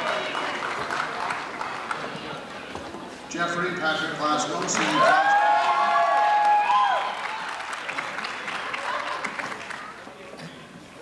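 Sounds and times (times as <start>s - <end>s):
audience applause: 0.0s - 2.5s, 4.5s - 10.0s.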